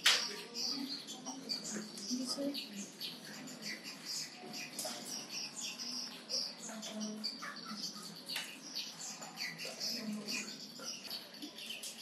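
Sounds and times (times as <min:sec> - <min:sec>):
faint murmuring voices: 0:00.0 - 0:12.0
small birds chirping: 0:00.0 - 0:12.0.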